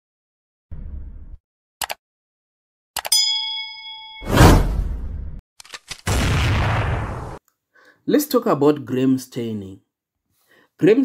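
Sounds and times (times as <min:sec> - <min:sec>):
notification bell ding: 0:03.1 - 0:04.5.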